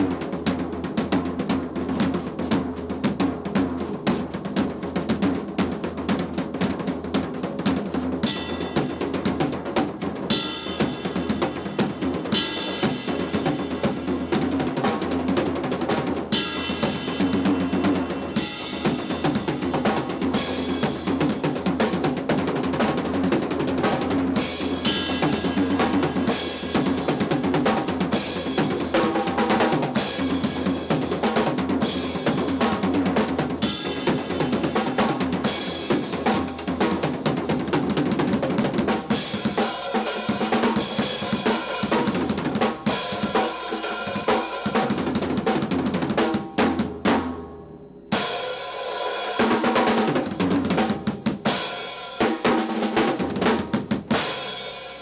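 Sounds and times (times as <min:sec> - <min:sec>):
bass drum: 0:00.0 - 0:48.3, 0:49.4 - 0:54.6
snare and tom strokes: 0:00.0 - 0:55.0.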